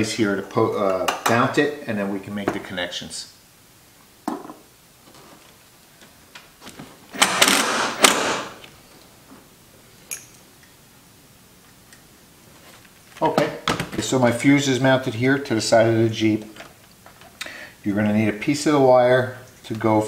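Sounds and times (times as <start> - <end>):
drill driving screw into metal: 7.2 - 8.6.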